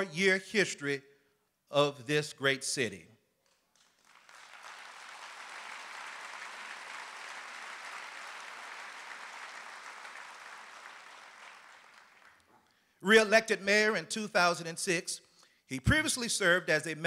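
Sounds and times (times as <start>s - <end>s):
audience applauding: 3.5s - 12.5s.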